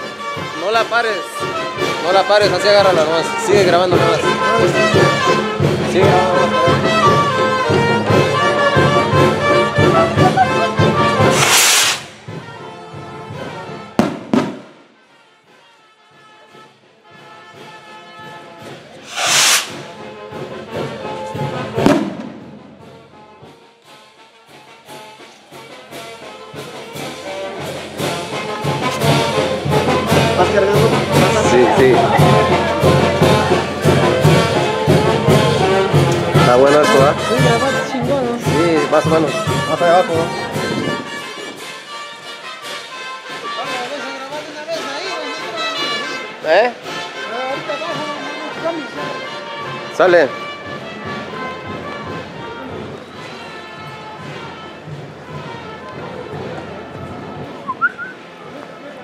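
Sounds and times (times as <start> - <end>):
brass band music: 0.0 - 58.8
firework bangs: 11.2 - 12.3, 14.0 - 14.9, 19.0 - 20.0, 21.8 - 22.8.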